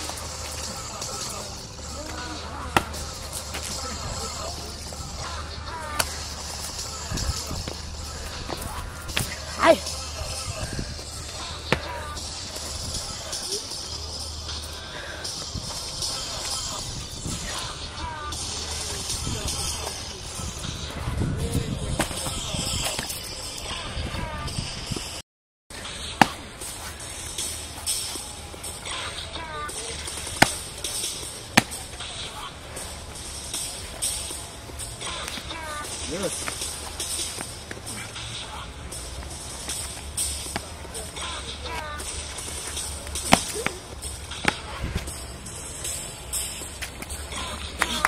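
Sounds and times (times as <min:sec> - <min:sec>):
outdoor background noise: 0:00.0 - 0:48.0.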